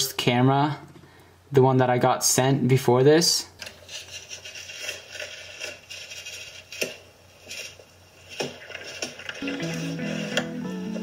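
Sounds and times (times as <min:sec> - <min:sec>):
rustling and handling noise: 0:03.6 - 0:11.0.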